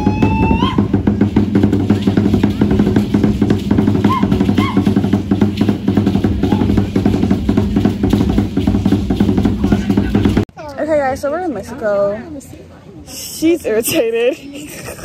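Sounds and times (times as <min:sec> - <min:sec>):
fast drumming on deep drums: 0:00.0 - 0:10.5.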